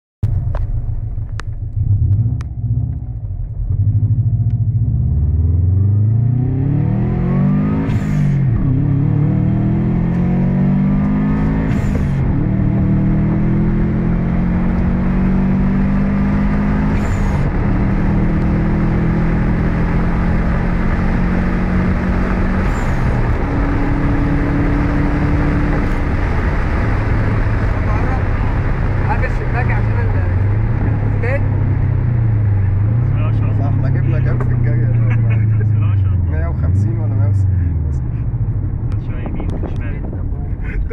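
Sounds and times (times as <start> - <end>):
car engine accelerating: 0.2 - 40.9.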